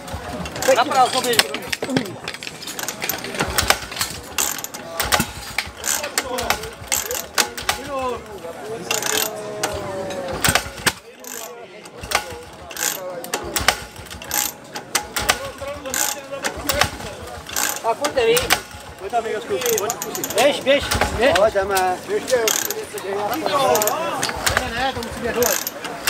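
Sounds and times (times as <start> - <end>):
hoses and metal couplings clattering: 0.0 - 26.0.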